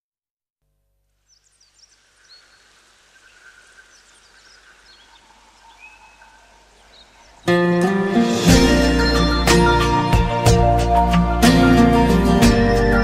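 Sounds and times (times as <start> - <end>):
soft hiss: 1.0 - 7.5
bird chirps: 1.2 - 7.7.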